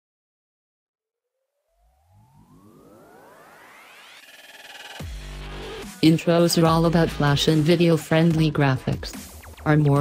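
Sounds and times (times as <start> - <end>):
synthesized riser sweep: 1.4 - 8.2
electronic music: 1.7 - 10.0.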